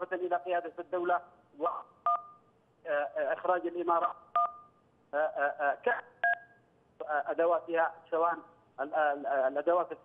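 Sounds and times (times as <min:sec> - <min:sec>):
two-tone keypad beep: 0:02.1 - 0:02.4, 0:04.4 - 0:04.7, 0:06.2 - 0:06.5
man talking over telephone: 0:02.9 - 0:04.2.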